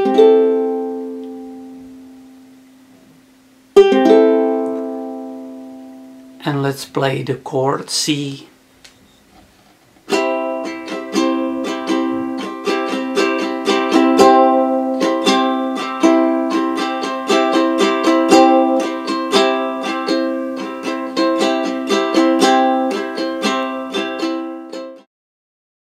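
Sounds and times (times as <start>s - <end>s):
ukulele strumming: 0.0s - 7.0s, 10.0s - 25.1s.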